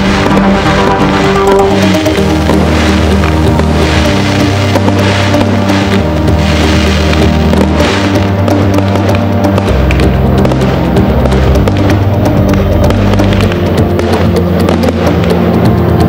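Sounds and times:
fireworks crackling and banging: 0:00.0 - 0:16.0
instrumental music with bass: 0:00.0 - 0:16.0.

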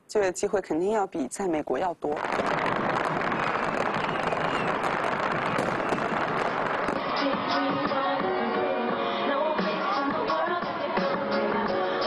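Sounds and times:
fireworks exploding and crackling: 0:01.7 - 0:08.6
music: 0:07.0 - 0:12.0.

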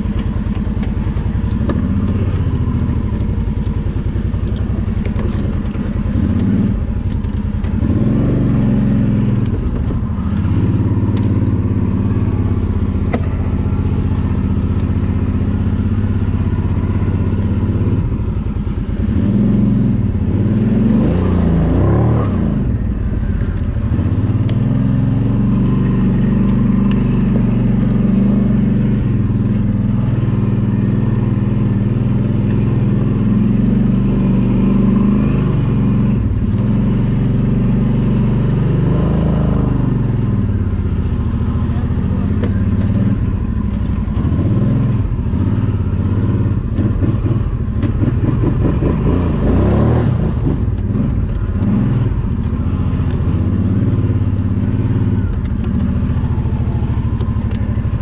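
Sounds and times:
quad engine running: 0:00.0 - 0:58.0.

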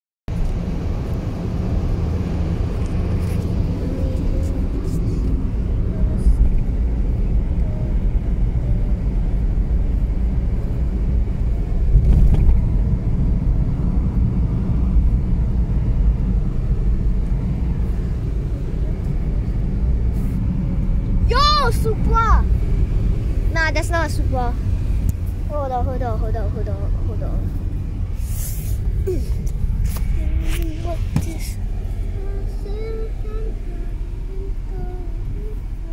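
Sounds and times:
car road and engine rumble: 0:00.3 - 0:35.9
car bumps: 0:28.8 - 0:31.6.

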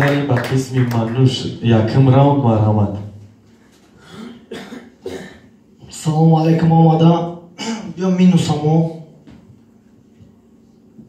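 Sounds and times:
man clearing his throat: 0:04.0 - 0:05.6.

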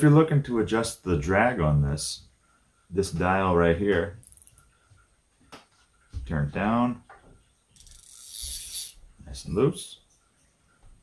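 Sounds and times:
fishing reel spool whirring: 0:07.8 - 0:09.0.

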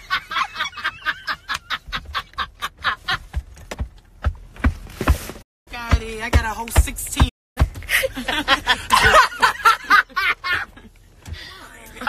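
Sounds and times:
woman laughing: 0:00.0 - 0:03.4, 0:07.9 - 0:10.9.

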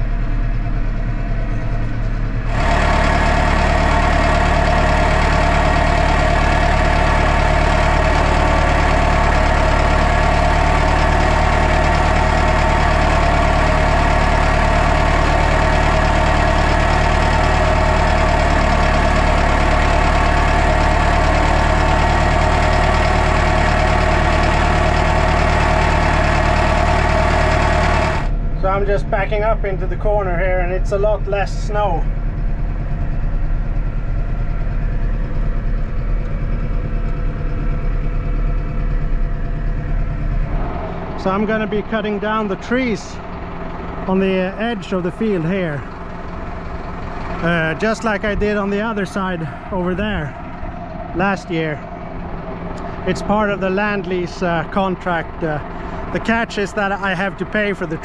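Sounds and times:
tractor diesel engine running: 0:00.0 - 0:58.0.

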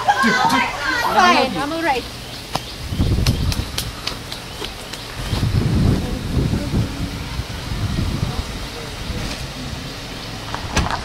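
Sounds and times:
young people shouting excitedly: 0:00.0 - 0:02.2.

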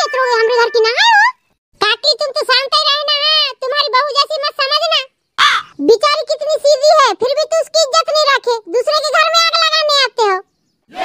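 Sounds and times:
pitched-up cartoon voices talking: 0:00.0 - 0:11.0.

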